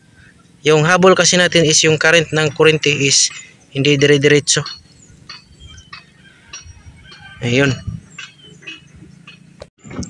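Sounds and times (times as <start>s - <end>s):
high-pitched chirps: 1.5s - 9.6s.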